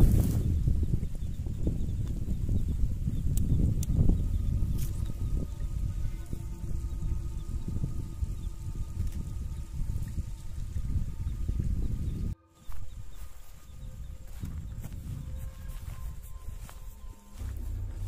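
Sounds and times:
faint steady tones: 0.0 - 18.0
wind buffeting microphone: 0.0 - 18.0.

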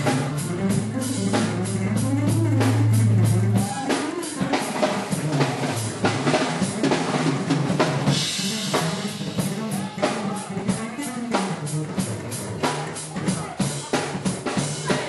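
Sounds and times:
drum kit steady beat: 0.0 - 15.0
electric bass line: 0.0 - 15.0.

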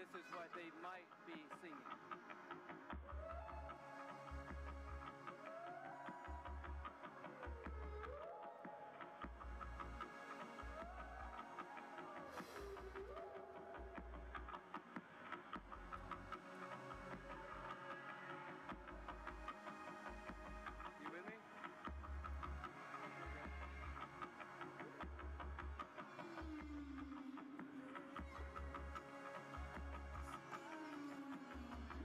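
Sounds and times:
low pulsing bass beat: 21.8 - 22.7.

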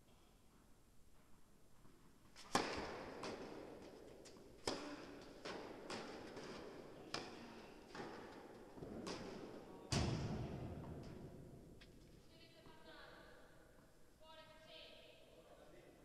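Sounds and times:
tennis ball bouncing on court: 2.4 - 11.3
tennis ball hit by rackets: 2.4 - 11.4.

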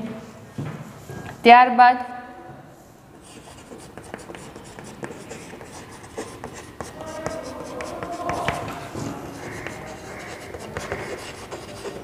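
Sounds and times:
chalk scratching on blackboard: 3.2 - 12.0.

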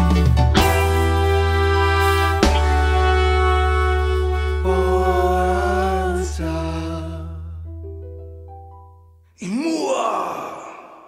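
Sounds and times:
breathy voiced cry: 9.4 - 11.0.

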